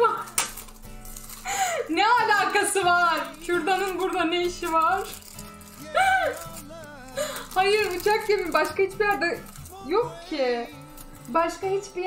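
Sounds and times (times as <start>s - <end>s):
quiet background music: 0.0s - 12.0s
stiff paper sheets rustling: 0.0s - 12.0s.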